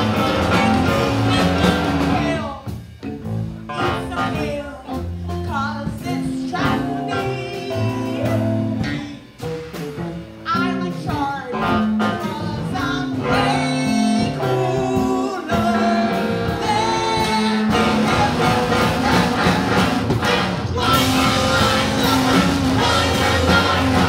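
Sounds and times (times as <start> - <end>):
electric guitar: 0.0 - 24.0
steady drum beat: 0.0 - 24.0
person singing: 3.7 - 9.3, 10.5 - 20.0, 20.7 - 24.0.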